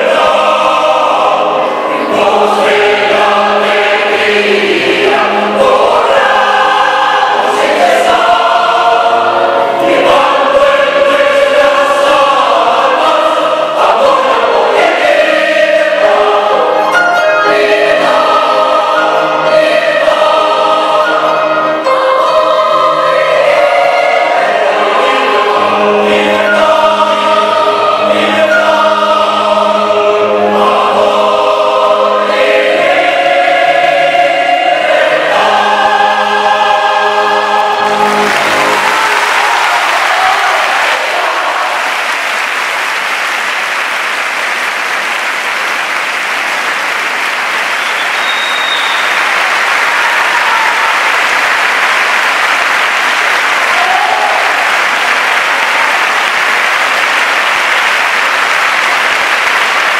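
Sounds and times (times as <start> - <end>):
piano accompaniment: 0.0 - 42.6
mixed choir singing: 0.0 - 44.4, 47.4 - 59.9.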